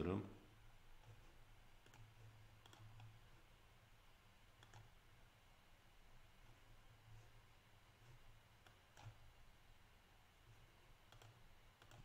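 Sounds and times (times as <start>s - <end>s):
low steady hum: 0.0s - 12.0s
faint computer mouse clicks: 1.8s - 3.2s, 4.6s - 5.0s, 8.6s - 9.2s, 11.1s - 12.0s.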